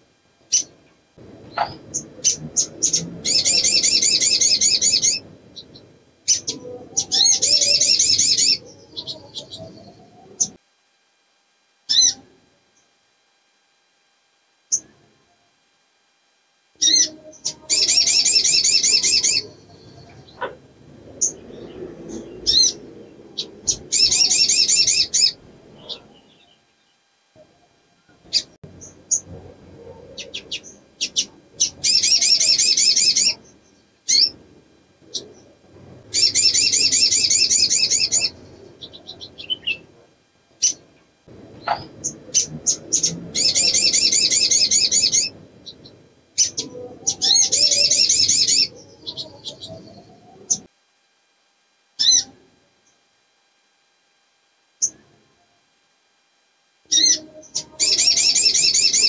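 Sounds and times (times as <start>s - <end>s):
bird chirps: 0.5s - 0.7s, 1.5s - 10.6s, 11.9s - 12.2s, 16.8s - 27.0s, 28.3s - 34.4s, 36.1s - 39.9s, 41.6s - 50.7s, 56.9s - 59.0s
sunbird trilling: 0.5s - 0.8s, 1.5s - 10.6s, 11.9s - 12.2s, 16.8s - 26.7s, 28.3s - 34.4s, 36.1s - 39.9s, 41.6s - 50.7s, 52.0s - 52.3s, 56.9s - 59.0s.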